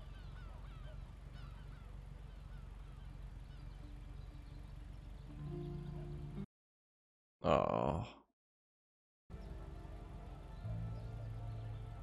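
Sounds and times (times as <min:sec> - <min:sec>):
faint bird chirps: 0:00.0 - 0:06.5
low music drone: 0:03.4 - 0:06.5, 0:09.3 - 0:12.0.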